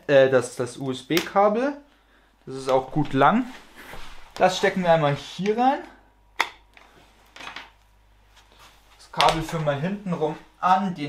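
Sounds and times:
cable handling clicks and rustles: 0.4s - 3.6s, 4.3s - 9.8s.

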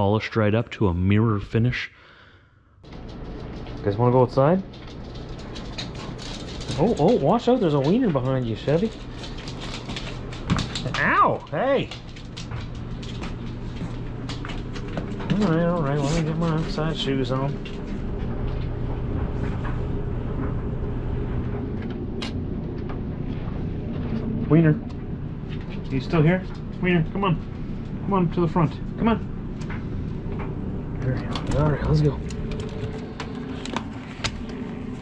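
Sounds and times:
steady low hum: 0.0s - 35.0s
claws clicking on hard floor: 4.7s - 11.1s.

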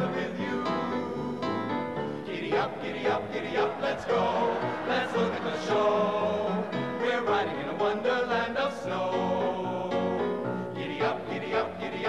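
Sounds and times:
men's chorus singing in harmony: 0.0s - 12.0s.

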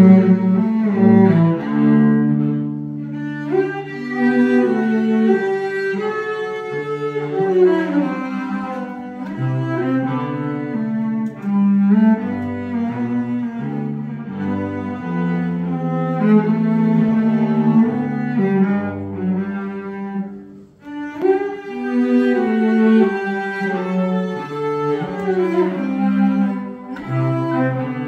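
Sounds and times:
bowed cello melody: 0.0s - 28.0s.

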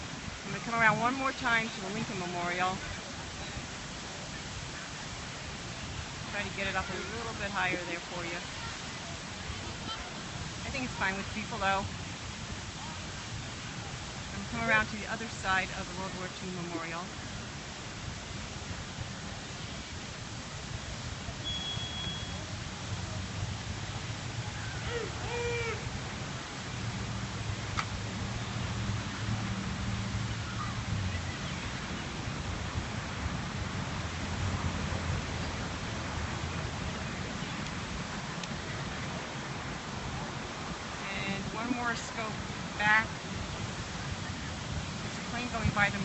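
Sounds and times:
fountain water splashing: 0.0s - 46.0s
faint distant voices: 0.3s - 17.5s.

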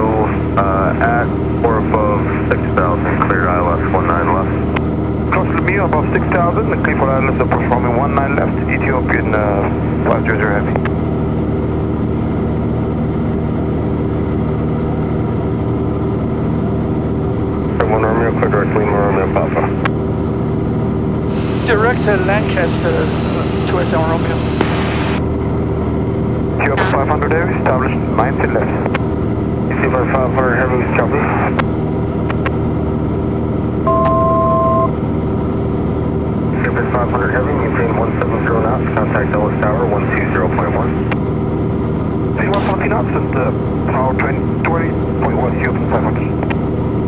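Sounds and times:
airplane engine droning in cabin: 0.0s - 47.0s
two-pitch electronic tone: 33.9s - 35.0s.

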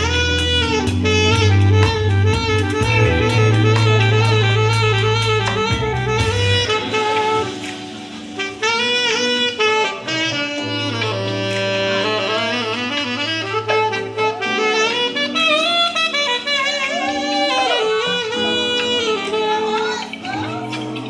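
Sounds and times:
low bass line: 0.0s - 7.5s
saxophone solo: 0.0s - 21.0s.

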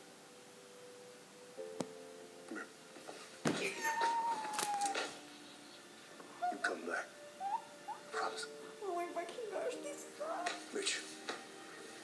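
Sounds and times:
woman squealing into a pillow: 3.7s - 5.0s.

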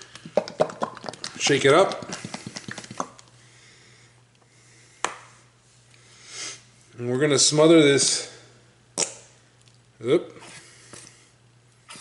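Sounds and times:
plastic bottle shaking: 0.0s - 3.3s
low electrical hum: 0.0s - 12.0s.

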